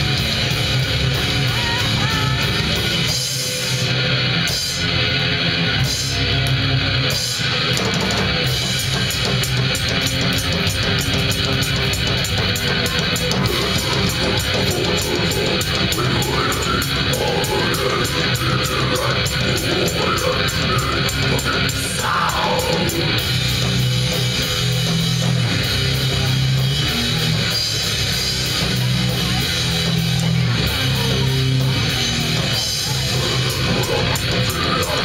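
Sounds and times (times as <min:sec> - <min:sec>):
fast drum beat: 0:00.0 - 0:06.4, 0:07.0 - 0:35.0
live band electric guitars: 0:00.0 - 0:35.0.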